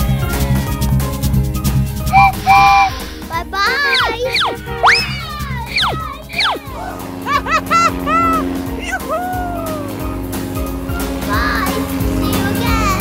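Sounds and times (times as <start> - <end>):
steady low drone: 0.7 - 12.5
cartoon background music: 1.7 - 13.0
squeaky cartoon calls: 2.1 - 8.4.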